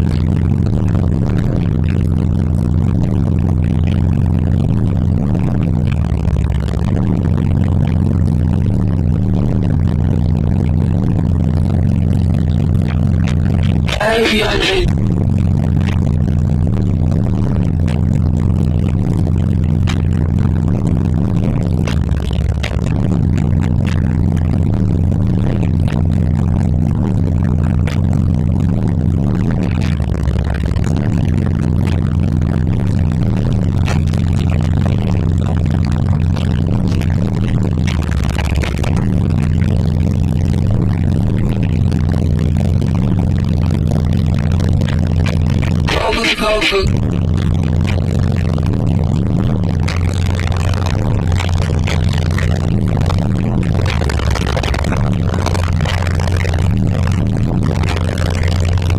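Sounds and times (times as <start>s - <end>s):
subwoofer bass-heavy music: 0.0s - 58.9s.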